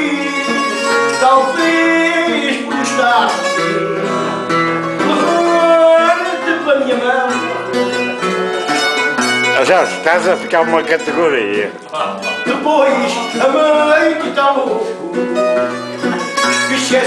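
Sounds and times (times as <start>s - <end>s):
plucked guitar melody: 0.0s - 17.0s
strummed guitar chords: 0.0s - 17.0s.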